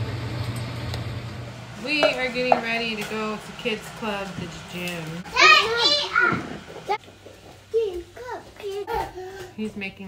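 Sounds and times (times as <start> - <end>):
kitchen appliance motor humming: 0.0 - 7.7
woman speaking: 1.8 - 5.2, 9.6 - 10.0.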